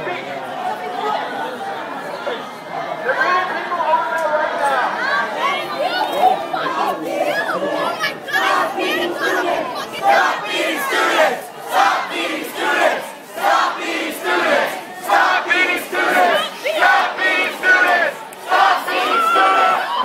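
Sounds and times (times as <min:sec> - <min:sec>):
crowd chanting rhythmically: 0:06.4 - 0:20.0.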